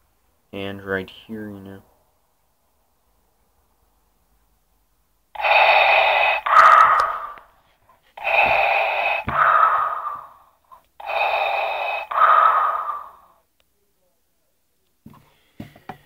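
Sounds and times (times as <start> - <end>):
mechanical respirator breathing: 5.4 - 13.4.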